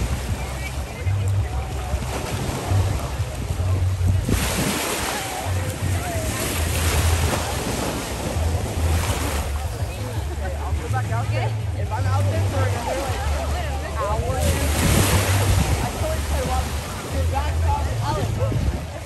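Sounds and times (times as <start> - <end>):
wind buffeting microphone: 0.0 - 10.9, 12.5 - 19.0
surf washing against rocks: 0.0 - 19.0.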